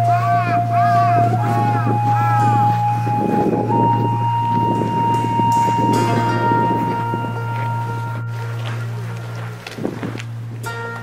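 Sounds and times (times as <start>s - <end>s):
melody of long held notes: 0.0s - 11.0s
steady low drone: 0.0s - 11.0s.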